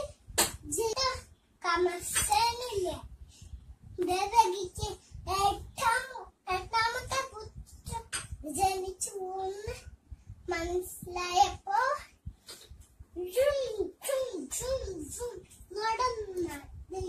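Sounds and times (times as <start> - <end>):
girl telling a story in sing-song: 0.0 - 3.3, 3.9 - 12.4, 13.1 - 17.0.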